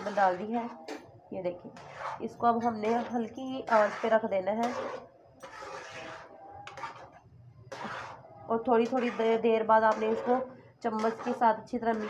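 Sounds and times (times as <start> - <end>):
spoon scraping pan: 0.0 - 12.0.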